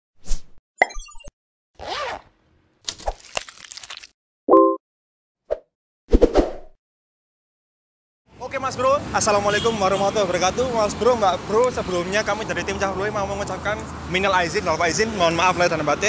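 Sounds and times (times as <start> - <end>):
swish: 5.5 - 6.8.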